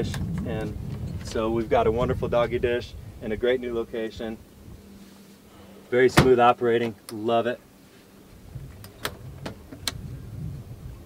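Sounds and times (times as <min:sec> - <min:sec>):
steady low rumble: 0:00.0 - 0:11.0
glove box latch clicks: 0:08.8 - 0:10.0.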